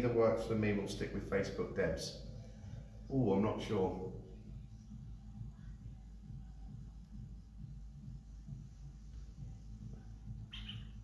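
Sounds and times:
low room rumble: 0.0 - 11.0.

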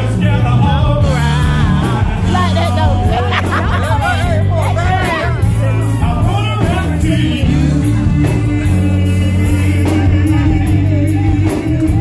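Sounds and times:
live band music: 0.0 - 12.0
person singing: 0.0 - 12.0
people talking: 2.2 - 7.6.

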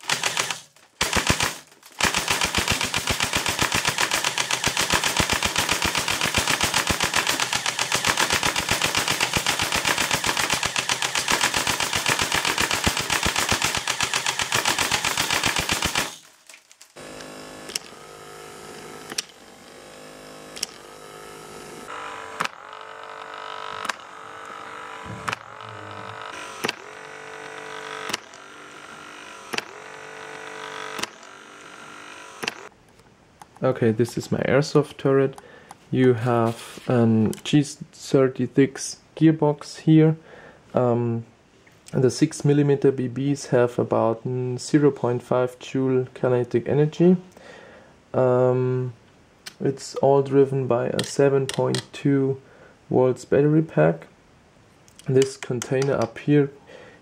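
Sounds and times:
airsoft gun firing full auto: 0.0 - 16.3
sharp click: 32.4 - 32.6.

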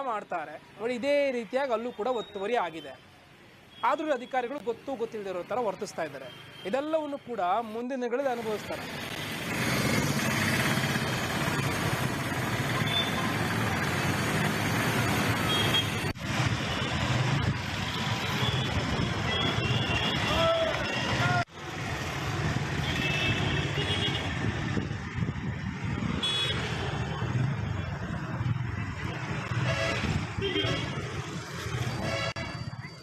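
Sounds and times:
steady traffic noise: 0.0 - 33.0.

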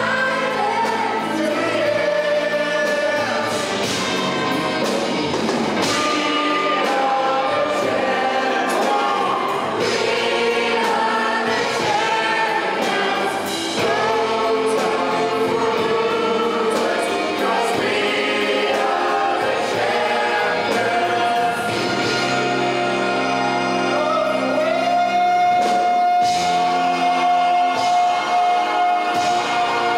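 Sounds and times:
chorus singing with instruments: 0.0 - 29.9.

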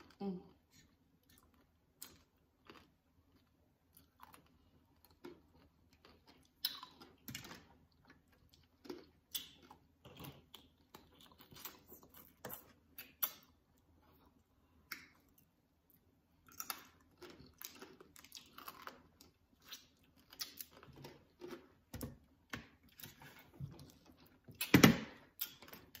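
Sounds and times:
biting and chewing candied fruit: 0.0 - 26.0.

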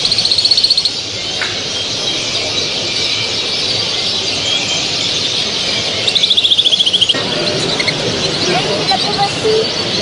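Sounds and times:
bird fast trill: 0.0 - 10.0
birds twittering chorus: 0.0 - 10.0.

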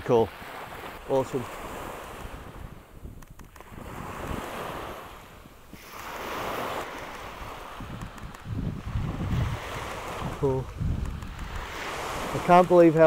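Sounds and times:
ocean waves breaking on sand: 0.0 - 13.0
wind rumbling on microphone: 0.0 - 13.0.

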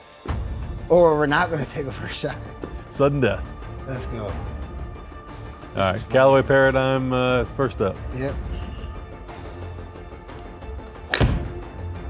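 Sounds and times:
background music: 0.0 - 12.0
golf club striking ball: 11.0 - 11.6.

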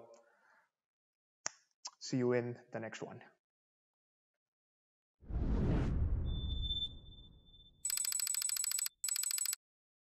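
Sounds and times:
deep whoosh: 5.2 - 7.4
buzzy telephone-like ringing: 7.8 - 9.6.

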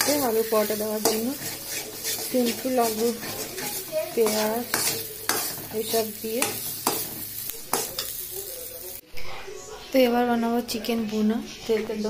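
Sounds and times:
spoon scraping a metal pan: 0.0 - 8.3
food sizzling: 0.0 - 9.1.

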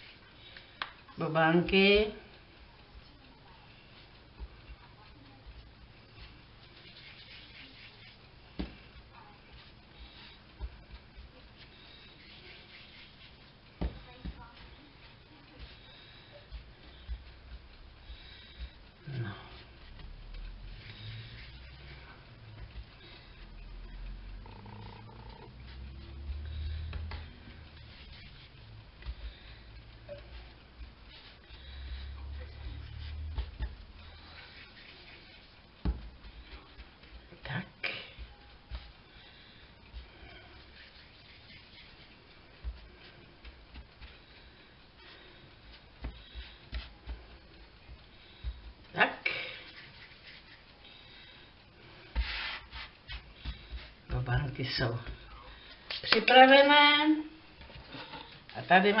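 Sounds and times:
hands rolling dough: 0.0 - 59.0.

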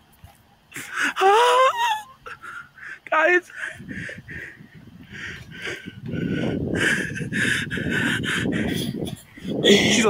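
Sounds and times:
person's high-pitched wordless cry: 1.0 - 2.3.

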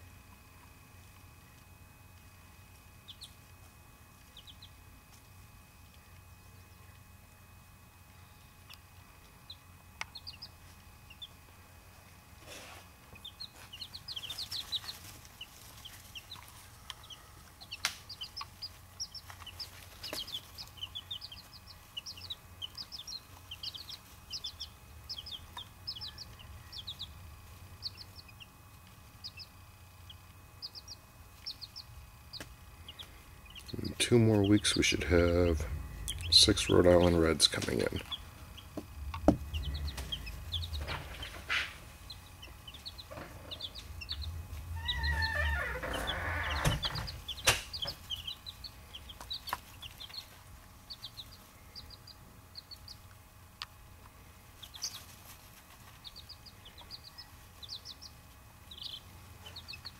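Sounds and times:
chicks peeping: 0.0 - 59.9
steady low hum: 0.0 - 59.9.

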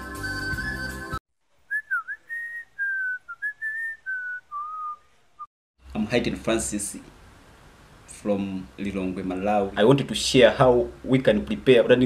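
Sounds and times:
music: 0.0 - 1.2
person whistling a tune: 0.0 - 5.0.

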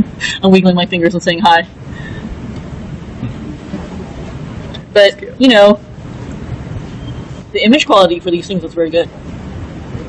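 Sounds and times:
room rumble and hiss: 0.0 - 10.0.

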